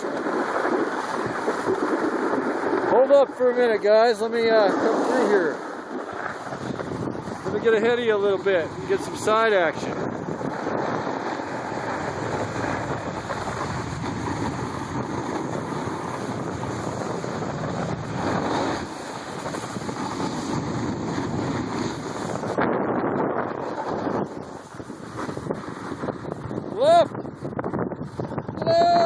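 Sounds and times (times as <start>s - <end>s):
skis sliding on snow: 0.0s - 27.0s
wind rushing over microphone: 0.0s - 29.0s.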